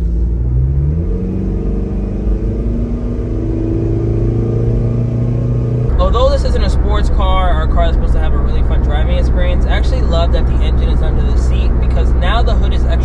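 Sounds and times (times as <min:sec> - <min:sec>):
diesel engine accelerating: 0:00.0 - 0:13.0.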